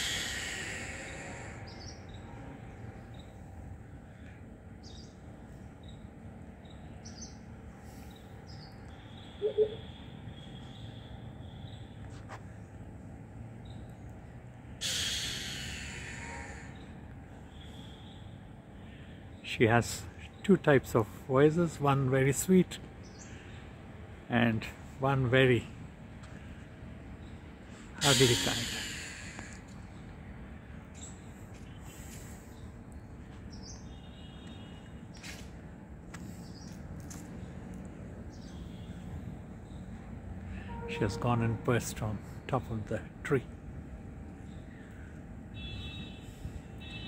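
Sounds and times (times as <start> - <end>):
bird rasping hiss call: 0.0 - 1.9, 14.8 - 16.8, 28.0 - 29.6
low rumble of wind: 0.0 - 28.0, 28.8 - 47.0
bird high chirp: 8.0 - 12.0, 40.6 - 42.5.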